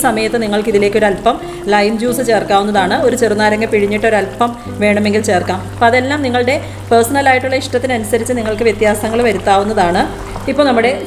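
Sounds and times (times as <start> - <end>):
woman speaking: 0.0 - 11.0.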